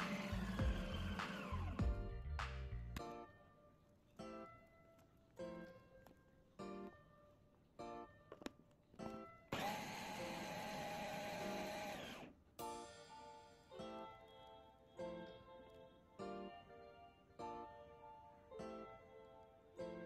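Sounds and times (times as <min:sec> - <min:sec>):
loud whirring noise: 0:00.0 - 0:01.9, 0:09.5 - 0:12.3.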